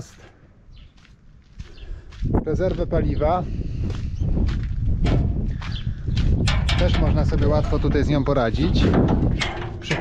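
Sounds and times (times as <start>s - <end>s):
faint soft footsteps: 0.0s - 8.1s.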